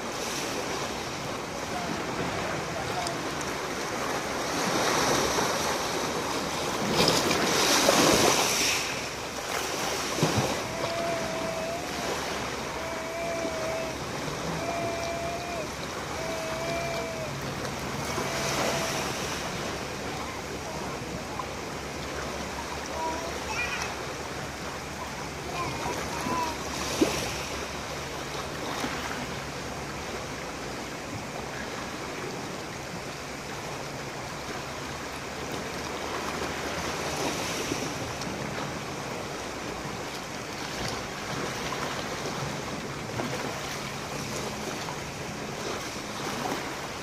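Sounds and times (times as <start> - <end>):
waves on pebble shore: 0.0 - 47.0.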